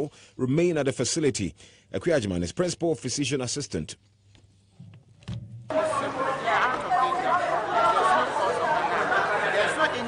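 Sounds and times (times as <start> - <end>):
many people talking at once: 5.7 - 10.0.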